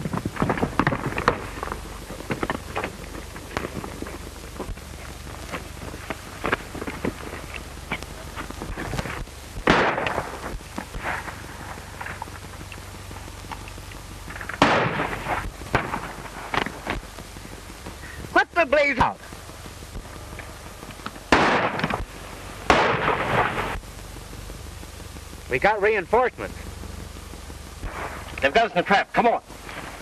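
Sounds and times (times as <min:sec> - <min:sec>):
steady low hum: 0:00.0 - 0:30.0
gunshots: 0:09.0 - 0:11.8, 0:14.5 - 0:17.0, 0:21.3 - 0:23.8.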